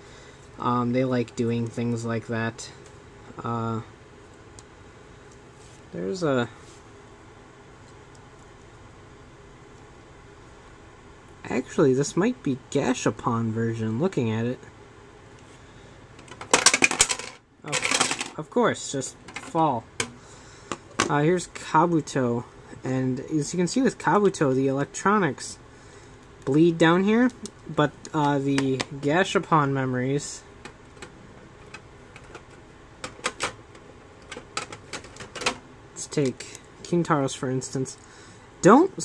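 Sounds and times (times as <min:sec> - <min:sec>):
plastic pieces clattering onto table: 0:16.3 - 0:18.4.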